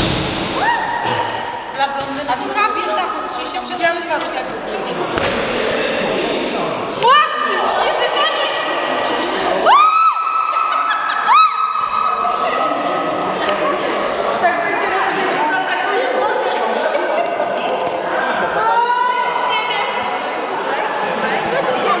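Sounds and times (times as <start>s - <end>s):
echoing voices and chatter: 0.0s - 22.0s.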